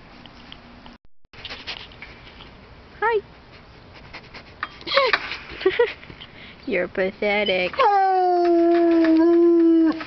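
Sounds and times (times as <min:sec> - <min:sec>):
dog whining: 0:07.3 - 0:10.0.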